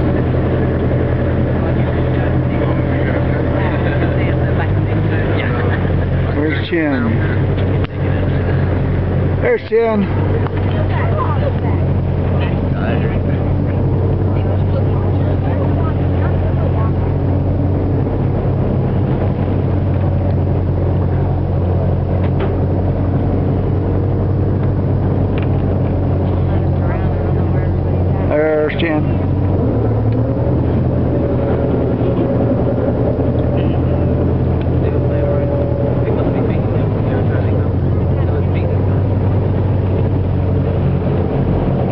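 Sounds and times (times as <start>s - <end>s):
boat engine droning: 0.0s - 41.9s.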